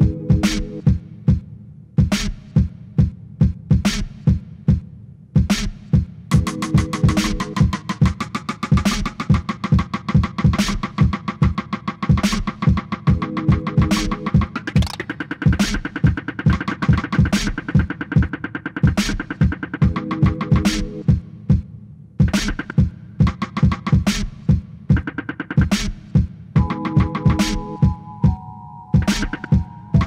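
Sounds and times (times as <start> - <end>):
kick drum: 0.0 - 8.2, 17.2 - 28.4
ticking hi-hats: 5.5 - 28.0.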